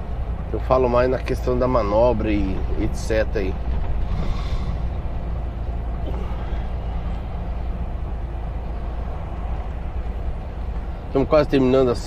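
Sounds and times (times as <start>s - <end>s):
road noise: 0.0s - 12.0s
truck diesel engine rumbling: 0.0s - 12.0s.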